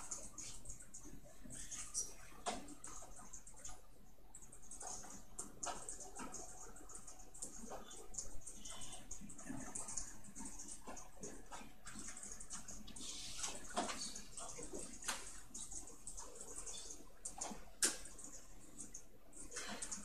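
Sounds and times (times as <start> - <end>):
small clicks and rustles: 0.0 - 20.0.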